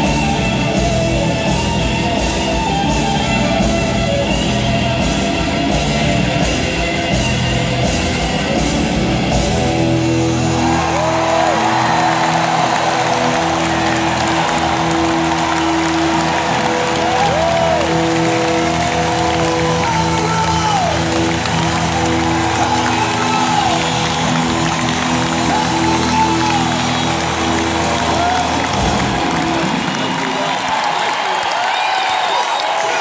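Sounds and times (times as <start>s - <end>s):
crowd cheering and applause: 0.0s - 33.0s.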